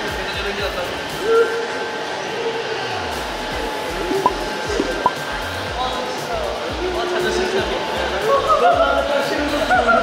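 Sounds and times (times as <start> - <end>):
small electric fan whirring: 0.0 - 9.5
background music: 2.8 - 10.0.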